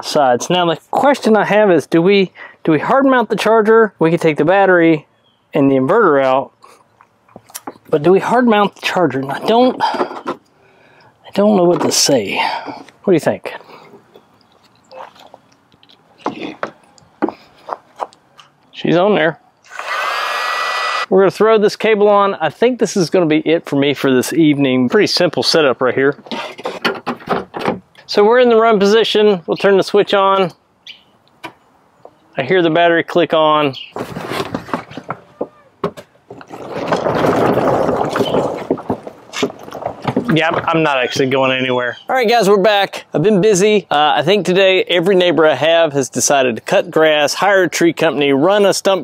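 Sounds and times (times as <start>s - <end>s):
hydraulic crimping tool creaking: 19.6s - 21.1s
tyres crunching on wood chips: 36.4s - 40.9s.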